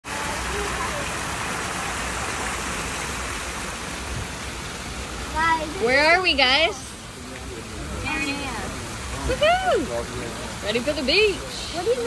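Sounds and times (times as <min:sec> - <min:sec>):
fountain water splashing: 0:00.0 - 0:12.0.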